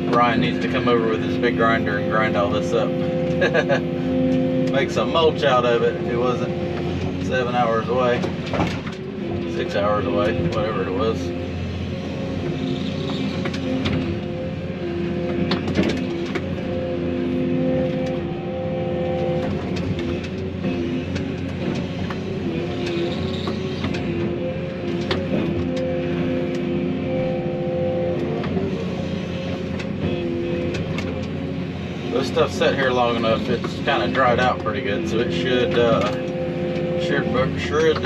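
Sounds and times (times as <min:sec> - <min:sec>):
excavator diesel engine running: 0:00.0 - 0:38.0
hydraulic whine: 0:00.0 - 0:38.0.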